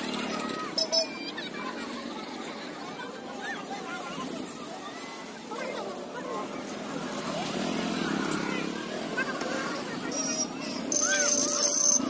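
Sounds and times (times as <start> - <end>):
market crowd voices: 0.0 - 12.0.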